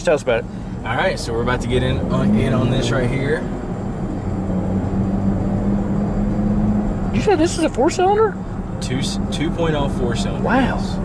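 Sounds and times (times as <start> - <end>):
car engine drone in cabin: 0.0 - 11.0
road and tyre rumble: 0.0 - 11.0.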